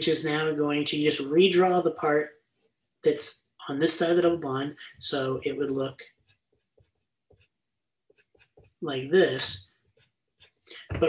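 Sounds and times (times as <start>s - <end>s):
pen scratching on paper: 8.1s - 8.8s.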